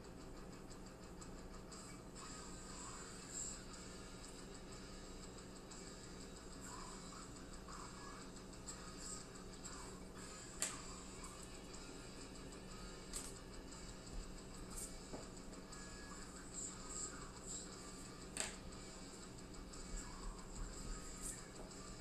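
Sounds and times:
faint background music: 0.0s - 22.0s.

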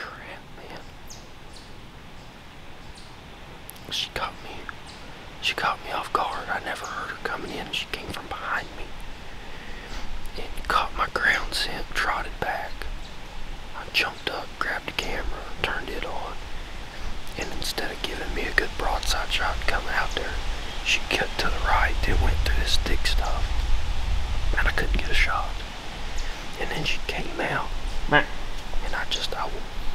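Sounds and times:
man whispering: 0.0s - 0.9s, 3.7s - 9.0s, 9.6s - 13.0s, 13.7s - 23.5s, 24.5s - 25.6s, 26.2s - 29.8s.

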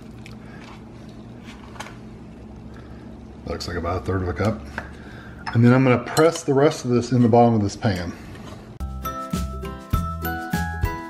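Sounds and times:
steady low hum: 0.0s - 8.8s.

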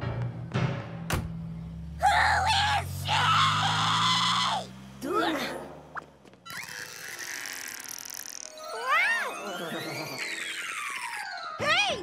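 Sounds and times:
cartoon character screaming: 2.0s - 4.7s.

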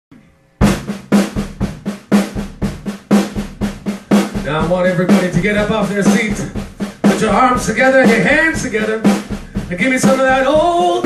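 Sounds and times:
drum kit groove: 0.6s - 11.0s.

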